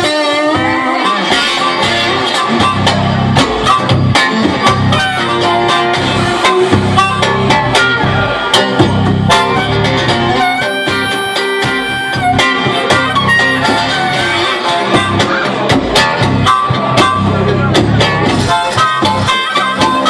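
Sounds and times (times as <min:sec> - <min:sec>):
acoustic guitar: 0:00.0 - 0:20.0
amplified harmonica: 0:00.0 - 0:20.0
drums: 0:00.0 - 0:20.0
electric bass: 0:00.0 - 0:20.0.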